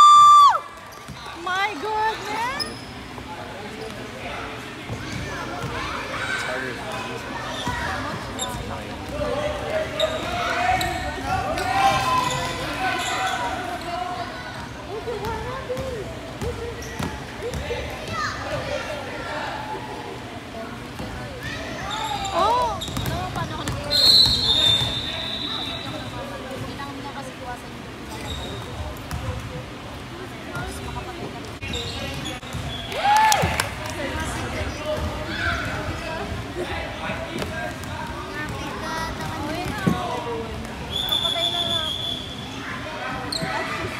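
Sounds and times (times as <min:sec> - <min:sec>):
children shouting and chattering: 0:04.9 - 0:08.4, 0:42.4 - 0:43.9.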